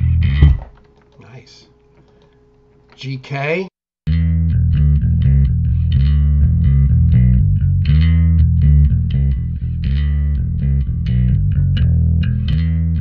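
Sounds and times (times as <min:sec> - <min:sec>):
electric bass line: 0:00.0 - 0:00.8, 0:04.1 - 0:13.0.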